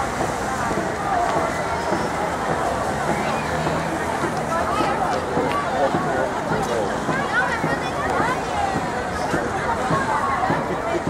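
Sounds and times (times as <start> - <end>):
babble of overlapping voices: 0.0 - 11.0.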